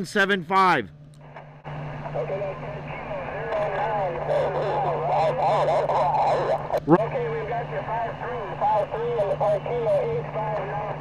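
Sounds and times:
low hum: 0:00.0 - 0:11.0
muffled voice over radio: 0:02.0 - 0:11.0
radio band hiss: 0:02.0 - 0:11.0.

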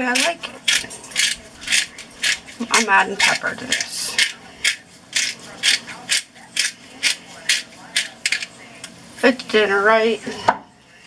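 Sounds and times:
pepper mill grinding: 0:00.0 - 0:08.9.

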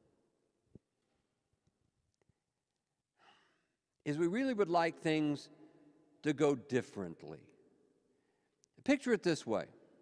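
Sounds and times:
breath into microphone: 0:03.2 - 0:03.8.

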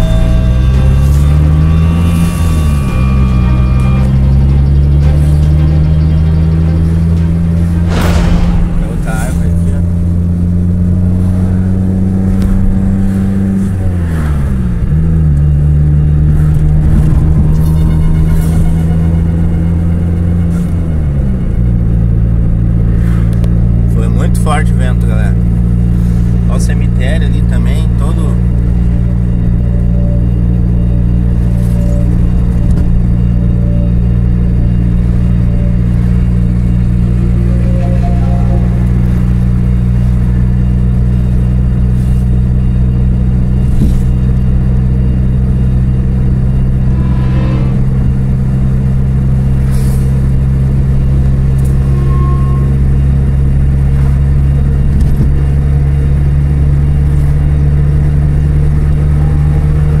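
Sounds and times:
car engine drone: 0:00.0 - 1:00.0.

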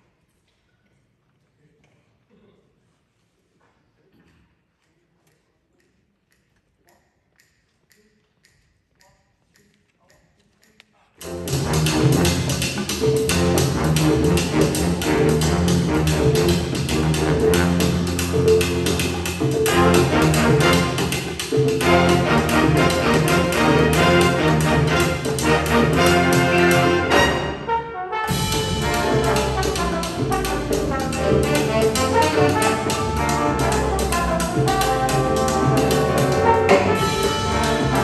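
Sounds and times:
big band salsa music: 0:11.2 - 0:38.0.

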